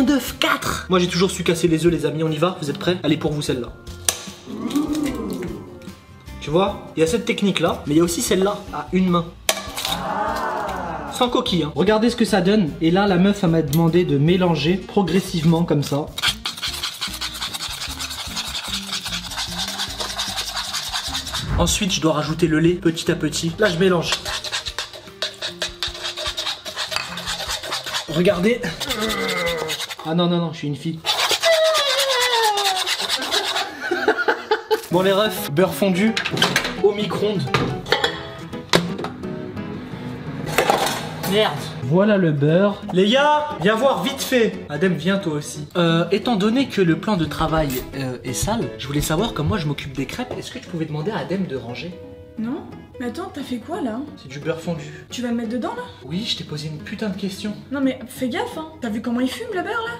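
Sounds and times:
background music: 0:00.0 - 0:59.9
metal spoon scraping a saucepan: 0:15.8 - 0:21.5, 0:23.6 - 0:30.3, 0:31.0 - 0:34.1
rising and falling tone: 0:21.3 - 0:22.0.

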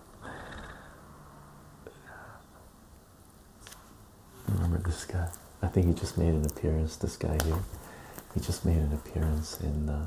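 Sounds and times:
man whispering: 0:01.8 - 0:02.6, 0:04.4 - 0:10.0.

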